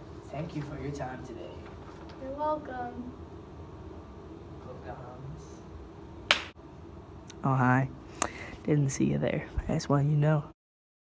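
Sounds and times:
sharp snap: 0:06.3 - 0:06.6.

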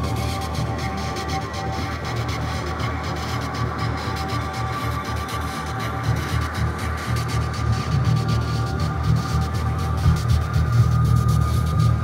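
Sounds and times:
low electronic hum: 0:06.6 - 0:12.0.

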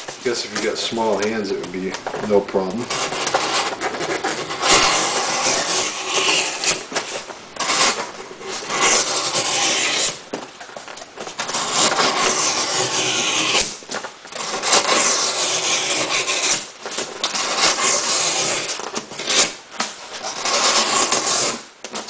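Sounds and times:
knife slicing through cardboard: 0:02.7 - 0:10.3, 0:11.3 - 0:22.0.

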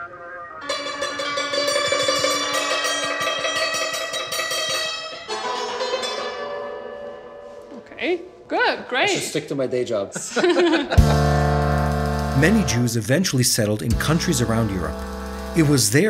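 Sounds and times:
hammered dulcimer notes: 0:00.6 - 0:07.7.

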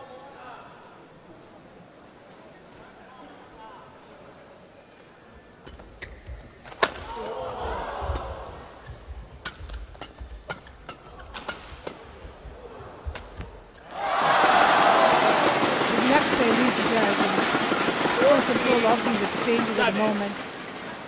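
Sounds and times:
racket striking shuttlecock: 0:05.7 - 0:07.4, 0:08.1 - 0:12.3, 0:13.0 - 0:13.9
crowd cheering and shouting: 0:13.8 - 0:19.2.

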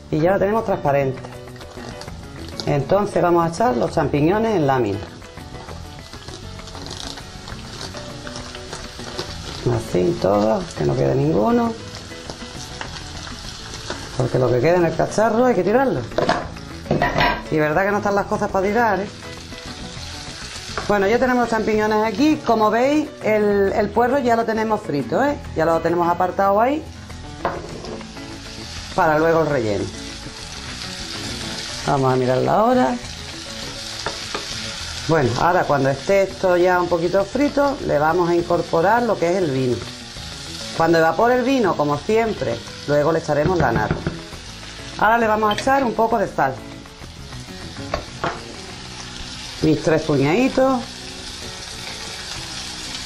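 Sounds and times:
mushrooms sizzling in oil: 0:00.0 - 0:53.0
soft background music: 0:00.0 - 0:53.0.

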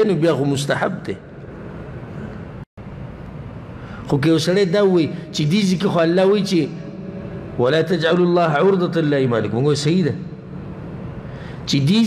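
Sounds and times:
room and microphone hiss: 0:00.0 - 0:12.0.

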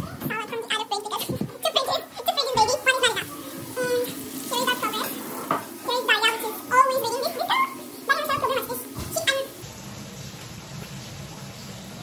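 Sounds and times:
people talking: 0:00.0 - 0:09.6
faint kitchen background noise: 0:00.0 - 0:12.0.

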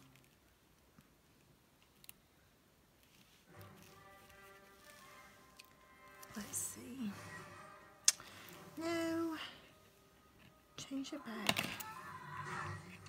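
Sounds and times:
person singing softly: 0:08.6 - 0:09.8, 0:10.7 - 0:13.0.

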